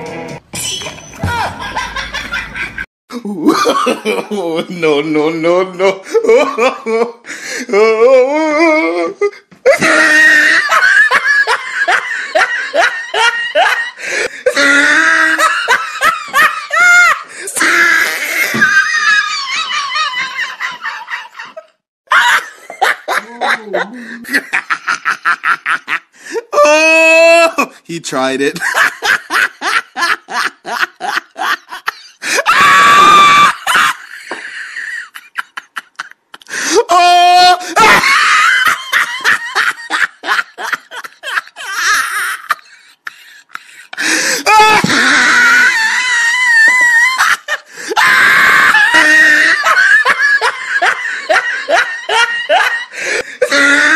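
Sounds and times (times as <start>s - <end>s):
person laughing hard: 1.2s - 4.8s, 5.7s - 27.7s, 28.6s - 53.9s.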